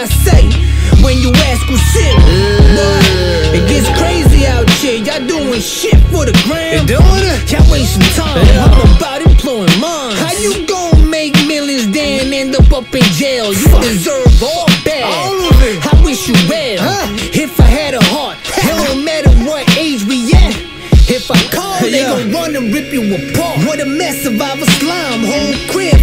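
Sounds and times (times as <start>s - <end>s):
rapping over a beat: 0.0s - 26.0s
low bass: 0.1s - 9.2s
deep kick drum: 2.2s - 4.8s, 6.0s - 9.5s.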